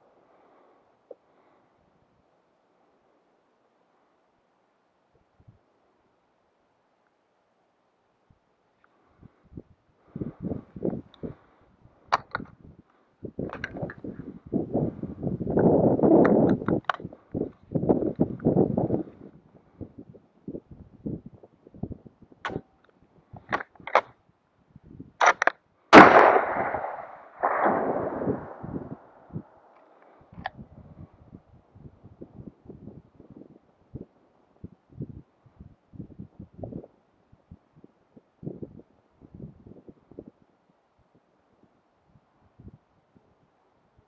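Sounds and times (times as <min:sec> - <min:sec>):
rifle shot echoing: 0:25.2 - 0:29.6.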